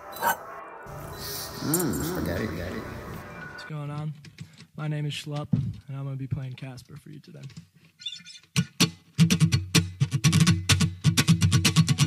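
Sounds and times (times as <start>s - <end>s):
man speaking: 1.8s - 4.1s.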